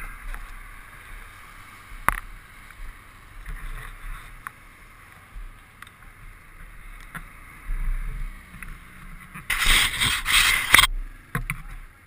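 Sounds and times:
engines idling: 0.0 - 12.0.

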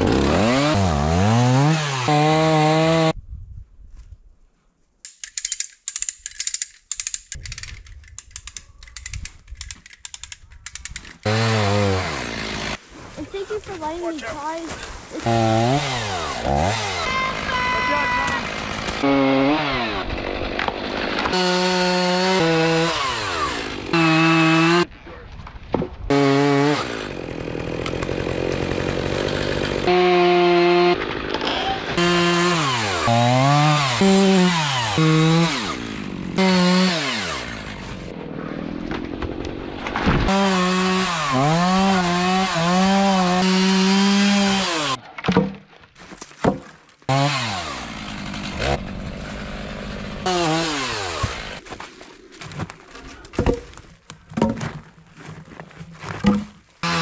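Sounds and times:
chainsaw cutting wood: 0.0 - 3.2, 10.9 - 12.8, 14.8 - 24.9, 26.1 - 38.2, 38.8 - 45.6, 46.4 - 51.6, 56.0 - 57.0.

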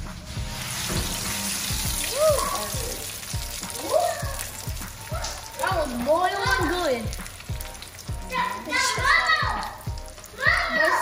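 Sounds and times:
oil sizzling in frying pan: 0.0 - 11.0.

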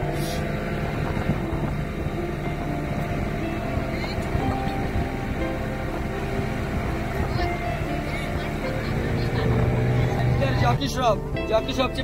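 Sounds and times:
music playing: 0.0 - 12.0
small boat engine running: 0.0 - 12.0.

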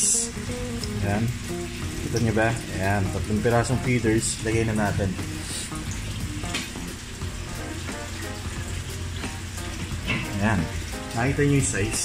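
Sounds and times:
aquarium filter bubbling: 0.0 - 12.0.

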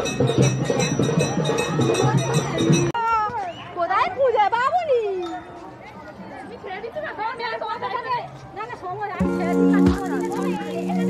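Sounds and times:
people chattering: 0.9 - 11.0.

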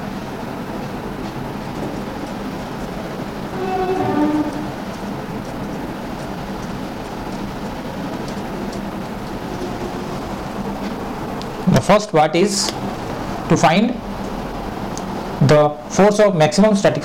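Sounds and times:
short hum-like tone: 3.4 - 5.0.

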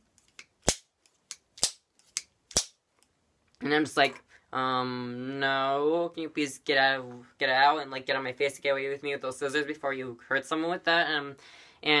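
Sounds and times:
scissors snipping: 0.3 - 2.7.

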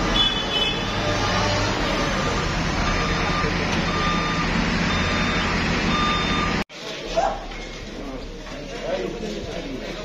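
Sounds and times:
diesel engine humming: 0.0 - 6.7
warning alarm beeping: 0.8 - 6.6.

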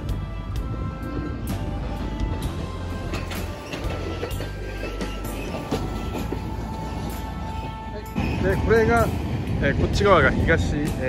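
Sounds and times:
background music: 0.0 - 11.0
streetcar rumbling on rails: 0.0 - 11.0.

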